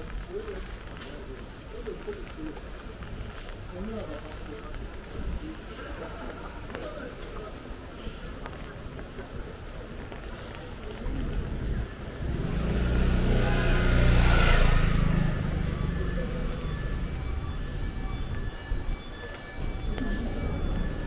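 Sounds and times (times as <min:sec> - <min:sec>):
vehicle engine passing: 0:12.1 - 0:17.6.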